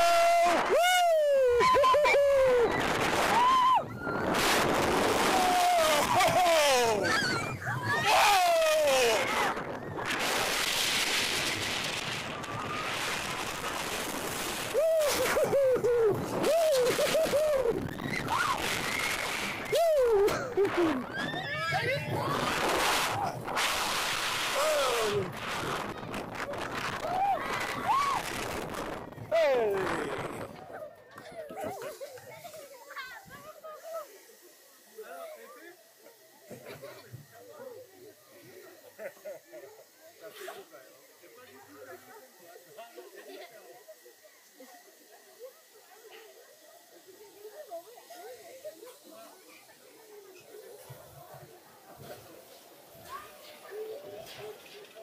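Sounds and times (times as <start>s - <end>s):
steady hiss: 0.0s - 55.0s
faint distant voices: 28.8s - 55.0s.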